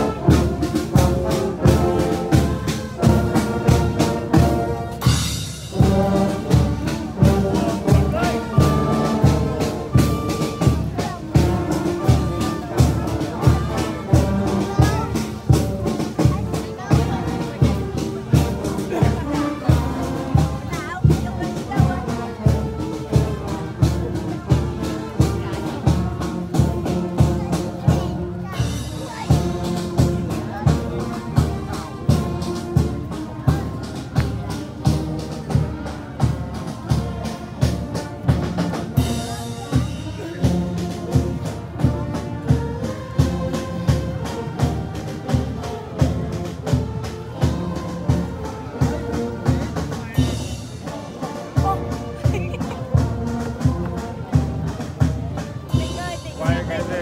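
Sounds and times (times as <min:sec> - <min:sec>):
marching brass band playing: 0:00.0 - 0:57.0
bass drum beat: 0:51.5 - 0:57.0.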